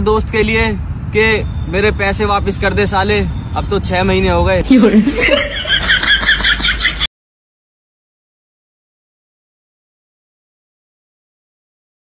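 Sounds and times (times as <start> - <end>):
high-pitched laughter: 4.6 - 7.1.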